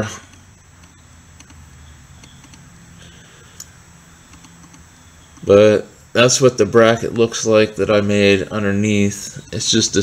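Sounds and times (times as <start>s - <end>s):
quiet background hum: 0.0s - 10.0s
faint small clicks: 2.2s - 2.6s, 3.6s - 5.5s
sharp tick: 2.2s - 2.6s, 4.3s - 5.5s.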